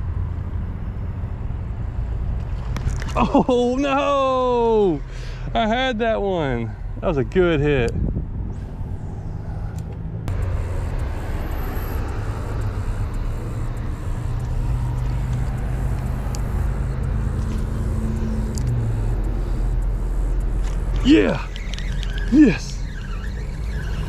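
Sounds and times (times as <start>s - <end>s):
passing cars and trucks: 0.0s - 24.0s
low engine drone: 8.1s - 24.0s.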